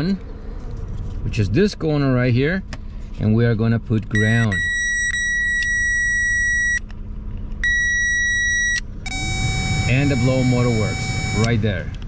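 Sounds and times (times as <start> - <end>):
high electronic tone: 7.6 - 11.8
blower motor running: 9.1 - 11.7.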